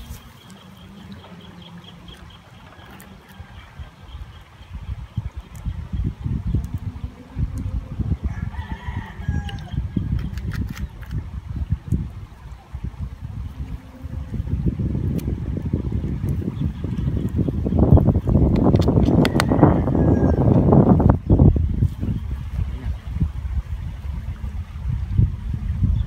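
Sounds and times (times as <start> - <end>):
wind buffeting microphone: 0.0 - 26.0
rooster crowing faintly: 8.2 - 9.8.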